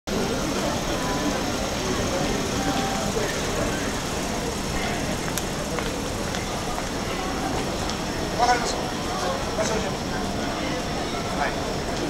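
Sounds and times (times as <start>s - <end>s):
chatter of passers-by: 0.1s - 12.0s
street and traffic noise: 0.1s - 12.0s.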